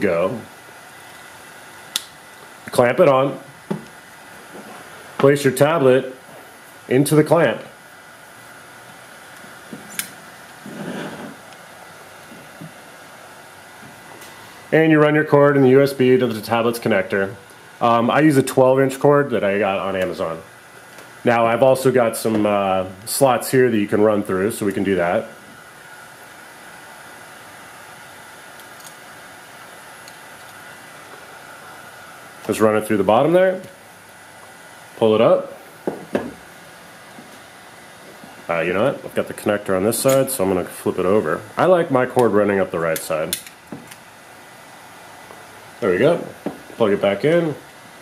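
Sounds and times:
room hiss: 0.0 - 48.0.

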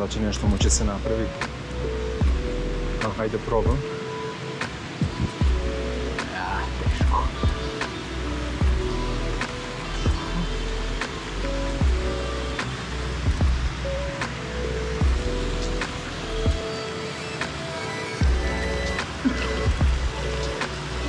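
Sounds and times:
background music with steady beat: 0.0 - 21.0.

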